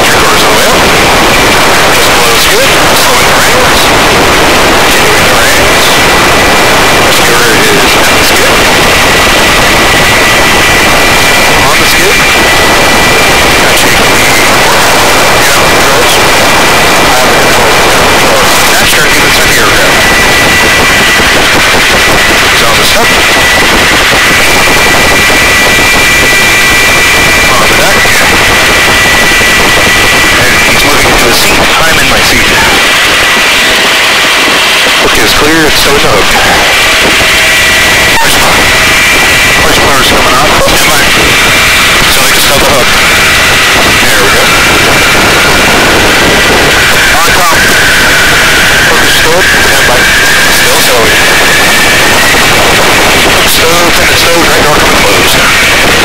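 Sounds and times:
helicopter rotor and engine noise: 0.0s - 56.0s
high whine: 0.0s - 56.0s.

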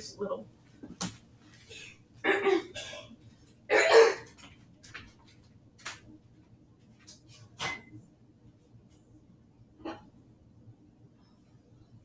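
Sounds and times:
woman coughing: 2.2s - 3.1s, 3.7s - 4.3s.

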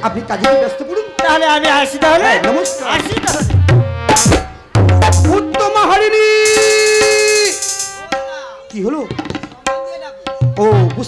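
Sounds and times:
long held bright note: 6.5s - 8.1s.

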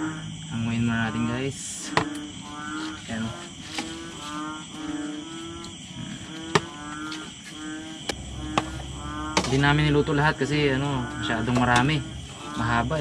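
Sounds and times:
high insect trill: 0.0s - 13.0s.

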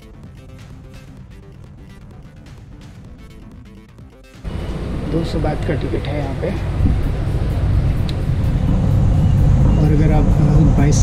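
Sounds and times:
steady low rumble: 0.0s - 11.0s
person talking: 5.0s - 6.7s, 9.7s - 11.0s.

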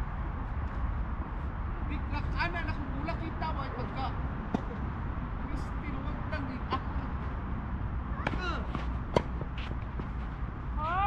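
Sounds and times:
tennis racquet striking ball: 4.5s - 4.8s, 8.2s - 10.2s.

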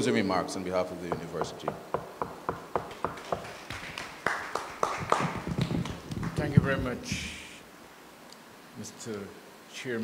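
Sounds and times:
audience clapping: 2.8s - 6.6s.

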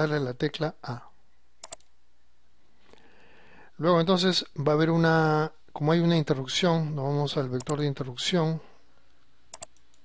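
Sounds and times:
low background hiss: 0.0s - 10.0s
computer mouse clicks: 1.6s - 1.9s, 9.5s - 10.0s.

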